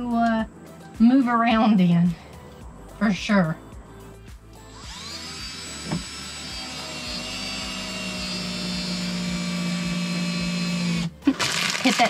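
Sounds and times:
cordless drill whining: 0:04.7 - 0:11.1.

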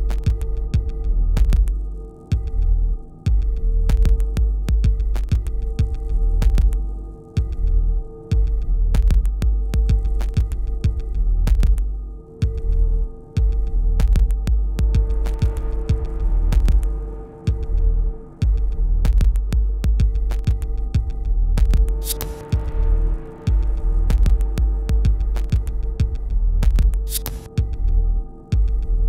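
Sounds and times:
held sine-like tones: 0:00.0 - 0:29.0
sub-bass drone: 0:00.0 - 0:29.0.

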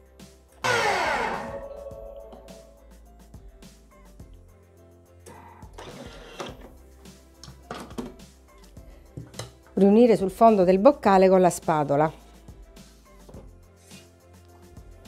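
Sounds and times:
blender blade grinding sugar: 0:00.7 - 0:01.6.

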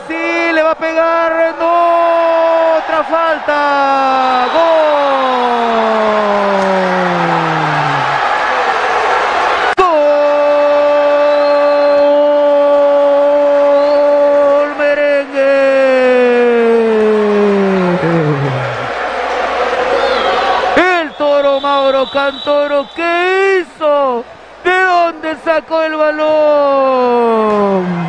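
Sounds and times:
man shouting goal cry: 0:00.5 - 0:08.3, 0:09.8 - 0:18.9
fast excited commentary: 0:20.7 - 0:27.9.

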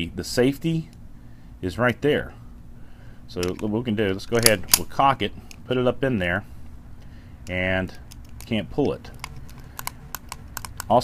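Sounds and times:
pistol metallic clicks: 0:03.4 - 0:03.7, 0:04.3 - 0:05.6, 0:07.4 - 0:11.0.

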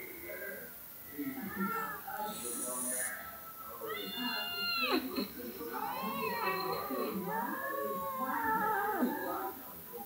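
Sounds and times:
cat meowing: 0:03.8 - 0:05.0.

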